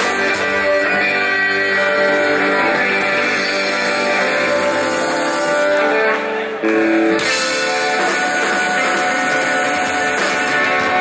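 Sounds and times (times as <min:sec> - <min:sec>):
live folk-rock band playing: 0:00.0 - 0:11.0.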